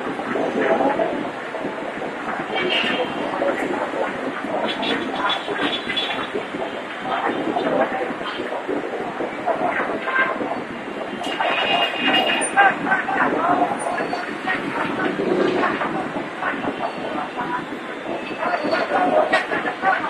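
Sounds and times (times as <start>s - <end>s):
people's voices: 0.0s - 20.0s
street noise: 0.0s - 20.0s
train running on tracks: 0.0s - 20.0s.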